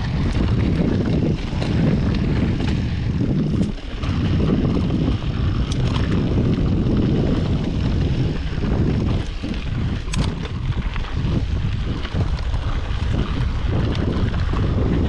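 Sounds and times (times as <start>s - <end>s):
mountain bike rumbling and rattling: 0.0s - 15.0s
wind buffeting microphone: 0.0s - 15.0s.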